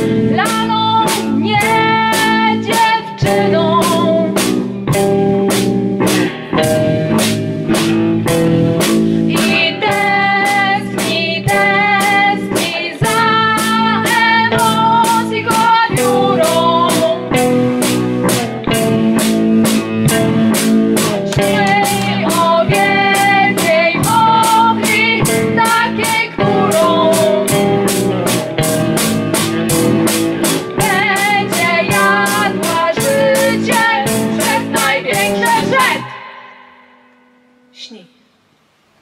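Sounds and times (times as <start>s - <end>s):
drum kit steady beat: 0.0s - 37.1s
electric guitar: 0.0s - 38.0s
women singing: 0.3s - 4.4s, 9.3s - 17.4s, 21.3s - 27.8s, 30.8s - 36.2s.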